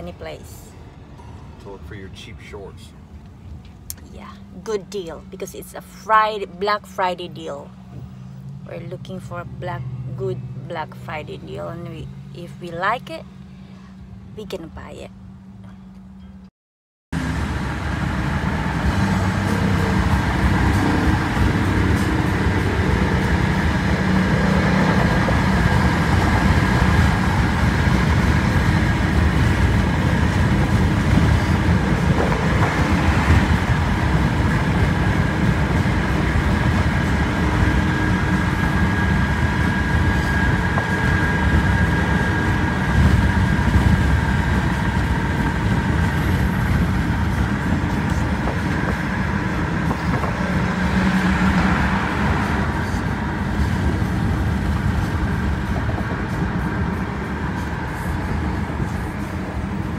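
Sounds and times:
car road and engine rumble: 0.0 - 16.5, 17.1 - 59.9.

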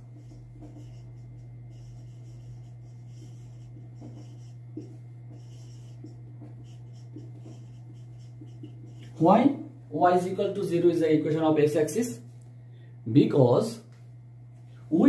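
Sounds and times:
marker pen writing on board: 0.0 - 9.2
steady low hum: 0.0 - 15.0.

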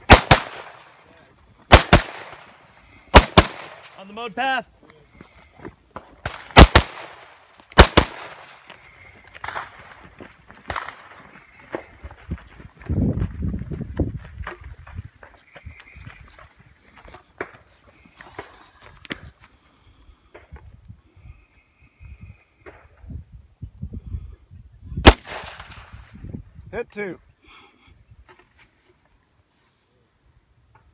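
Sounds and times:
loud gunshots: 0.0 - 1.0, 1.7 - 4.0, 6.2 - 8.6, 25.0 - 25.9
footsteps: 3.6 - 6.6, 7.2 - 20.8.

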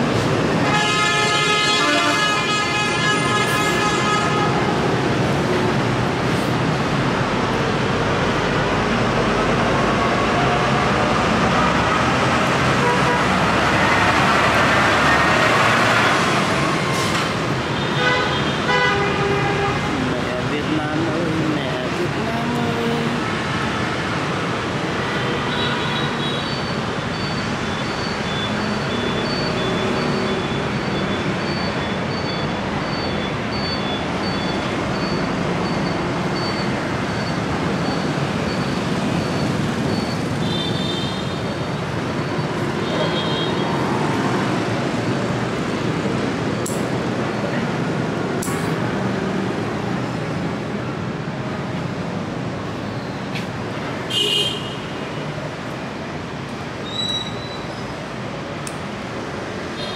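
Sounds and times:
road traffic noise: 0.0 - 59.9
vehicle horn: 0.6 - 4.6, 12.8 - 13.3, 17.9 - 19.8, 54.1 - 55.0.

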